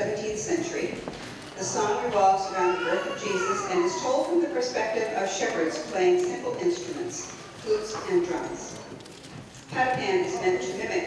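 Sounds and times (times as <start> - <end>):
woman talking over pa: 1.6 - 8.7.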